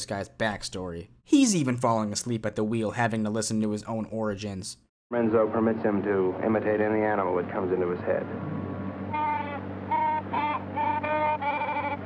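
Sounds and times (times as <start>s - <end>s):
man imitating animal cries: 8.4s - 12.0s.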